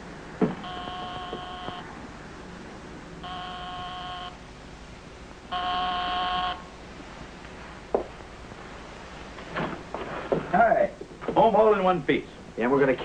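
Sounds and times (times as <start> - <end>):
electric doorbell buzzing: 0.6 - 2.0, 3.2 - 4.4, 5.5 - 6.7.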